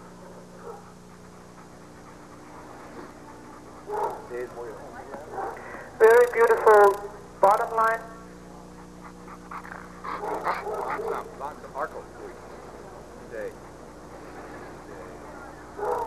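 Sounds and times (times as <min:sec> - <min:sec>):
dog barking: 0:00.2 - 0:01.0, 0:03.9 - 0:04.4, 0:05.2 - 0:05.7, 0:10.1 - 0:11.4, 0:15.8 - 0:16.0.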